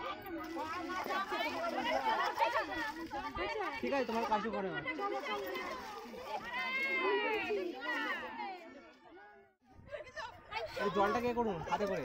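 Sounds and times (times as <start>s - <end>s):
women talking over one another: 0.0s - 9.2s.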